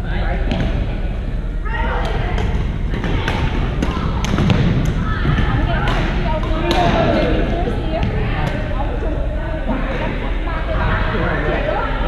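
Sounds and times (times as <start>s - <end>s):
background chatter: 0.0s - 12.0s
rackets striking shuttlecocks: 2.0s - 7.1s.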